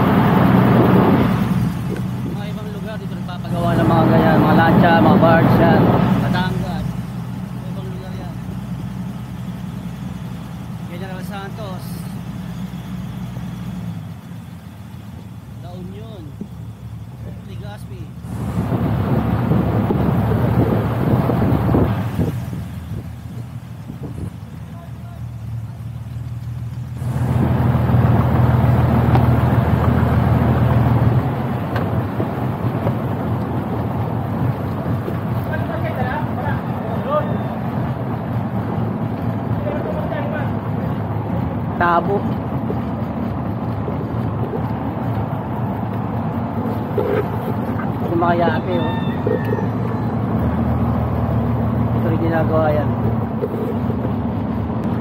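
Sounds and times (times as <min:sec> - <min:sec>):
rushing noise: 0:00.0 - 0:06.8
boat engine running: 0:00.0 - 0:55.0.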